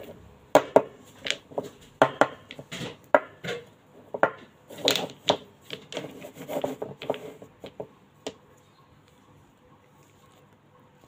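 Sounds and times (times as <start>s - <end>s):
plastic jars knocking and clicking: 0.0s - 8.4s
plastic jars scraping on paper: 4.7s - 7.8s.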